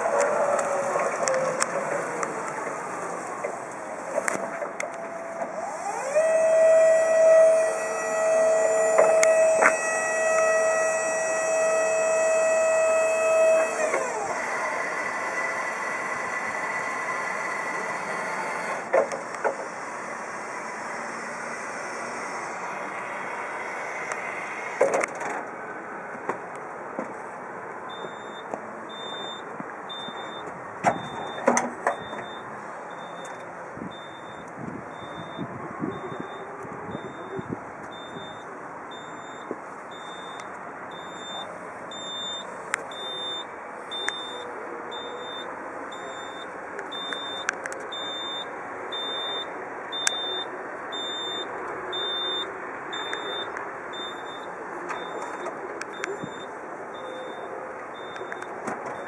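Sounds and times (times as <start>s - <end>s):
outdoor background noise: 0.0s - 59.0s
electronic warning beeper: 27.9s - 59.0s.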